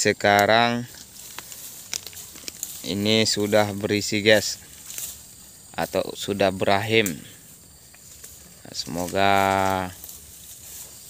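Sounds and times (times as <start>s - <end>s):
grass rustling and crackling: 0.0s - 11.0s.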